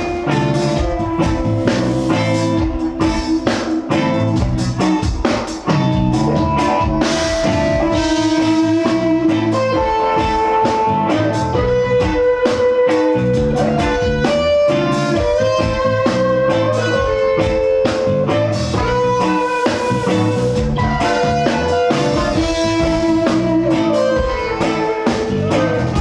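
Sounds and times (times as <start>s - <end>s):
bass guitar: 0.0s - 26.0s
drum kit: 0.0s - 26.0s
electric guitar long notes: 0.0s - 26.0s.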